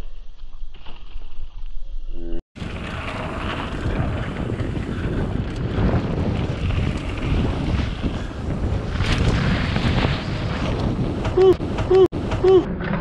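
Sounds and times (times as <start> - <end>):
low rumble: 2.2 - 13.0
wind buffeting microphone: 2.6 - 12.7.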